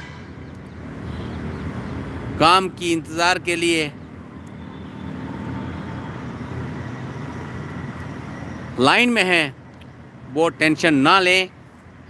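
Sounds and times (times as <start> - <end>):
road vehicle noise: 0.0 - 12.0.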